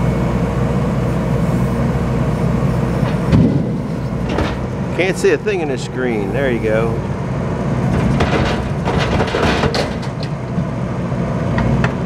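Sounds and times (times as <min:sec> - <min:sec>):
diesel engine running under load: 0:00.0 - 0:12.0
wood knocking and clunking: 0:07.9 - 0:10.7.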